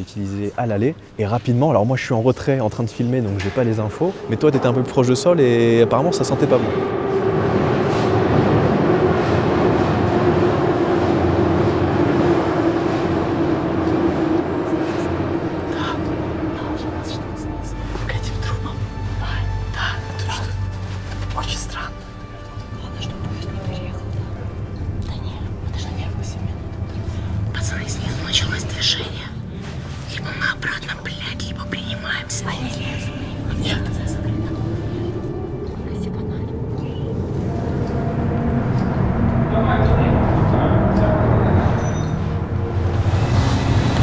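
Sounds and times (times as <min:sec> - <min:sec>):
steady low drone: 0:00.0 - 0:44.0
metro train roaring in tunnel: 0:01.9 - 0:44.0
person whispering: 0:25.0 - 0:29.4, 0:35.7 - 0:37.2.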